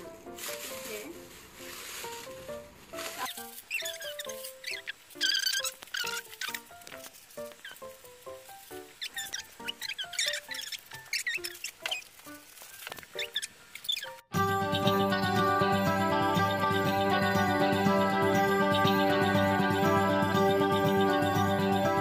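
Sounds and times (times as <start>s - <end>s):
plastic wrap crinkling and squeaking: 0.0s - 14.3s
plucked background music: 0.0s - 22.0s.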